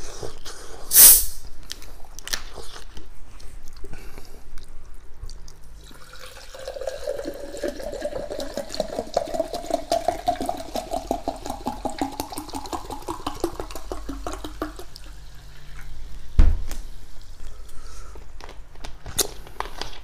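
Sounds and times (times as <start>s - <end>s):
water pouring into glass: 5.8s - 15.4s
fizzing bubbles: 5.9s - 16.0s.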